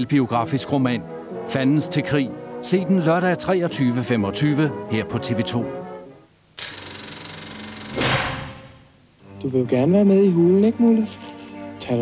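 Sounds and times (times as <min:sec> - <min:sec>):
mechanical rattle: 0:06.6 - 0:08.9.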